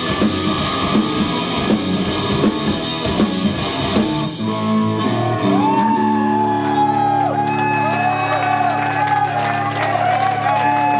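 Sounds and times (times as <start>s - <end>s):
distorted electric guitars: 0.0s - 8.3s
bass guitar: 0.0s - 10.9s
rock drums: 0.0s - 10.9s.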